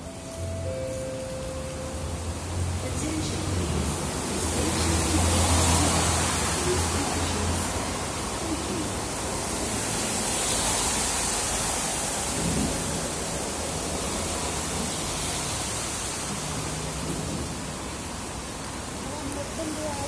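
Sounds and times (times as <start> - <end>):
steady rushing noise: 0.0 - 20.0.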